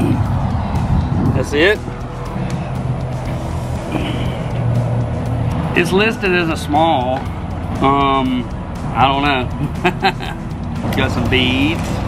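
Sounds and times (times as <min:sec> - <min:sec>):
background music: 0:00.0 - 0:12.0
highway traffic noise: 0:00.0 - 0:12.0.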